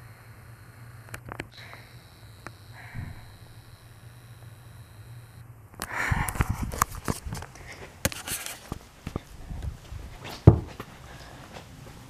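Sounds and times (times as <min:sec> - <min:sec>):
low steady hum: 0:00.0 - 0:12.0
small clicks: 0:01.0 - 0:07.5
soft breathing: 0:01.5 - 0:02.0, 0:02.7 - 0:03.5, 0:05.8 - 0:06.7, 0:10.9 - 0:11.7.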